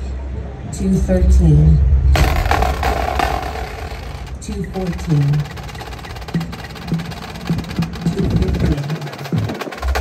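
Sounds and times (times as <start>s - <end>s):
percussion ensemble playing: 2.2s - 10.0s.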